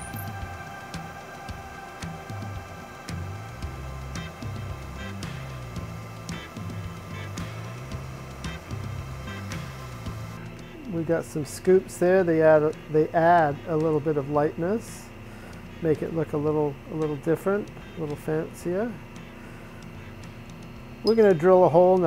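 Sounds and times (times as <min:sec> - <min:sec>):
background music with bass and beat: 0:00.0 - 0:11.1.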